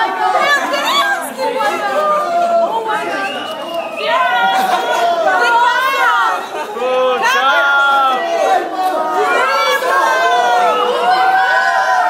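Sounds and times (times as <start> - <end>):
people chattering excitedly: 0.0 - 12.0.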